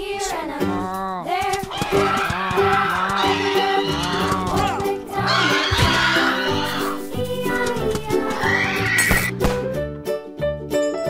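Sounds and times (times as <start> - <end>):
upbeat background music: 0.0 - 11.0
animal-like cry: 1.7 - 7.0, 8.3 - 9.3.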